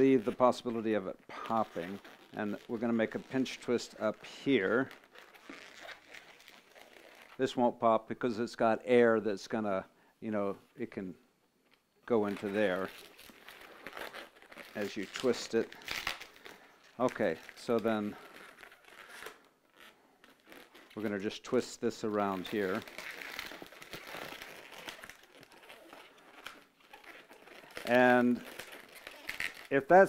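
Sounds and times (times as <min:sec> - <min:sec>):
rubbing of latex balloon: 0:00.0 - 0:07.4, 0:12.2 - 0:30.0.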